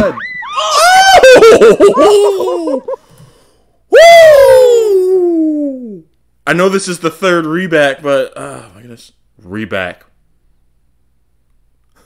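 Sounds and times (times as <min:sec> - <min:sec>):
long loud scream: 0:00.0 - 0:01.4, 0:03.9 - 0:06.0
people laughing and shrieking: 0:00.0 - 0:02.9.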